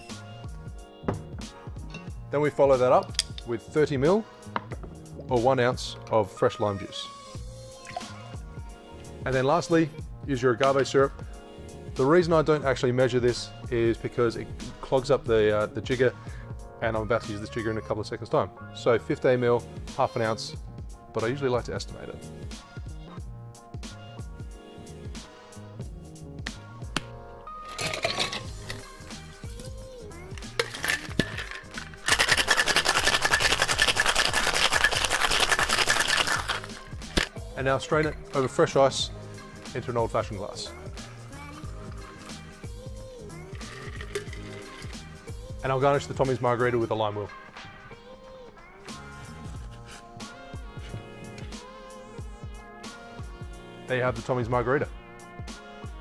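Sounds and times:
background music: 0.0s - 56.0s
juice dripping into metal shaker: 27.6s - 37.4s, 41.4s - 45.2s.

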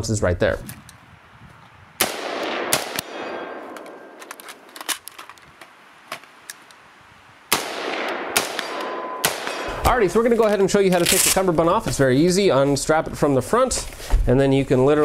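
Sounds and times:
rifle shots with echo: 2.0s - 4.7s, 7.5s - 10.2s.

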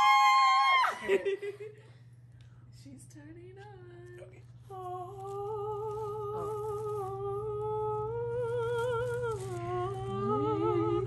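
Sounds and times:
voices humming with vibrato: 4.3s - 11.0s.

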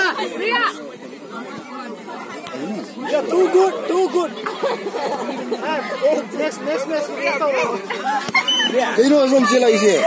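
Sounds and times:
distant chatter of people: 0.0s - 10.0s.

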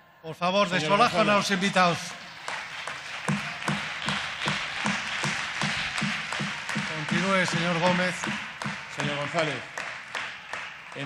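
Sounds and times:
crowd applause: 0.6s - 11.0s
rhythmic clapping pulse: 0.8s - 11.0s.

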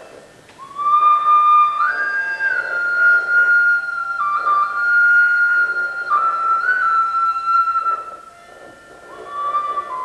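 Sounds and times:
flute holding long note: 0.6s - 10.0s.

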